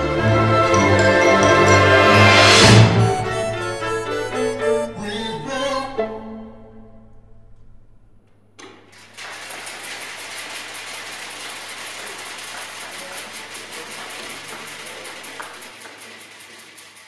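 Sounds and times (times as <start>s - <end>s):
music: 0.0s - 7.7s
audience applauding: 0.7s - 4.9s, 8.9s - 17.0s.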